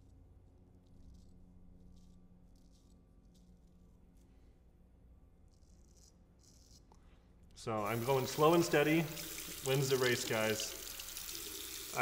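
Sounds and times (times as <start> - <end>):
straight razor scratching stubble: 5.5 - 7.0.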